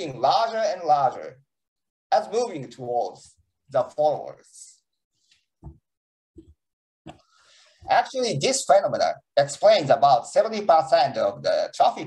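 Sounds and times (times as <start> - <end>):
man speaking: 0.0 - 1.4, 2.1 - 4.8, 7.9 - 12.0.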